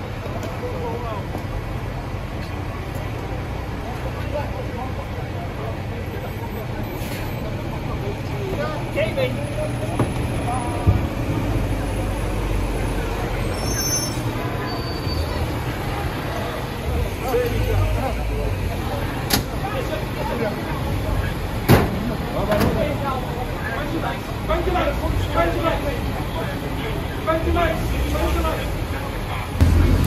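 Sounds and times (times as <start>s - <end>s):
large vehicle engine idling: 0.0s - 30.0s
scattered voices: 0.0s - 30.0s.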